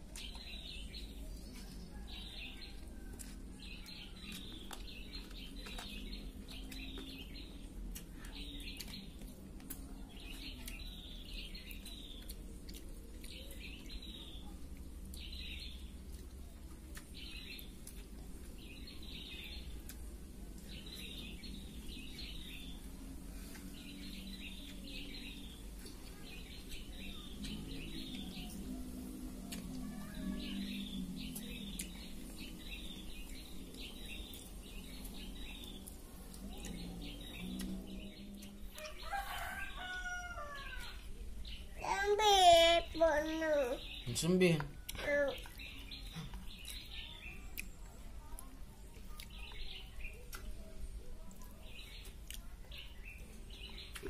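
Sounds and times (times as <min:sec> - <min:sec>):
small birds chirping: 0:00.0 - 0:54.0.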